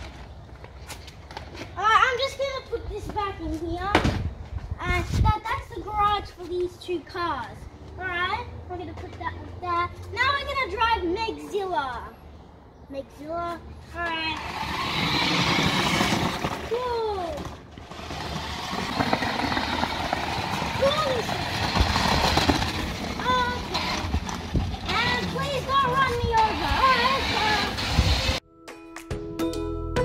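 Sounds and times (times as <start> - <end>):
tyres rumbling on concrete: 14.0 - 28.4
electric motor whine: 26.5 - 28.4.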